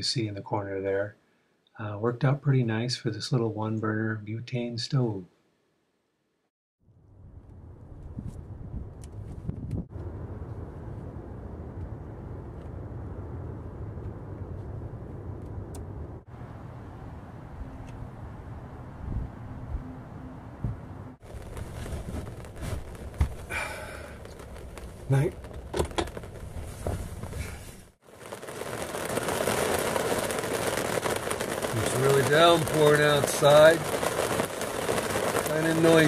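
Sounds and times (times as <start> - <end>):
rain drumming on plastic roof: 21.2 - 36.0.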